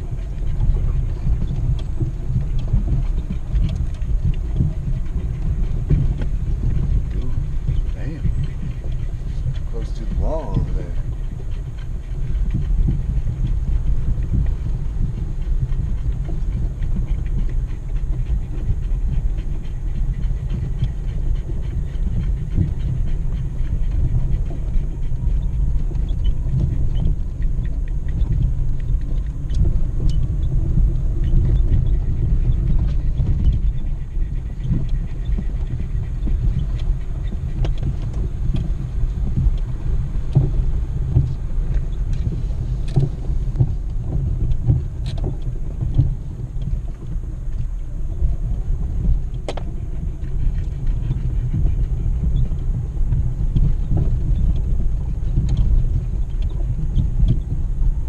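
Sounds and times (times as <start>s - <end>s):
engine and tyres on gravel rumbling: 0.0s - 58.0s.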